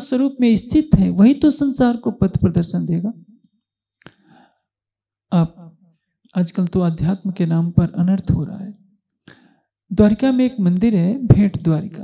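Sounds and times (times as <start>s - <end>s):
faint breath: 4.0s - 4.7s, 9.2s - 9.8s.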